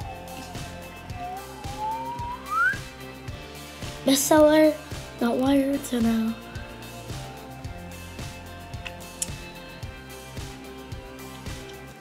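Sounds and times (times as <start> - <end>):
boy whistling rising note: 0.0 - 2.9
faint music with steady beat: 0.0 - 12.0.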